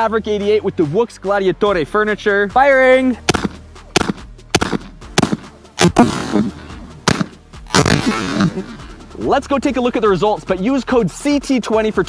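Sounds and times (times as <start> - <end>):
shotgun firing: 3.3 - 8.5.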